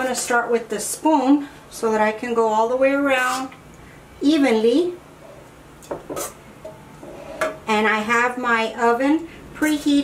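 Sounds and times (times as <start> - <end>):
woman speaking: 0.0 - 3.6, 4.2 - 5.0, 7.7 - 10.0.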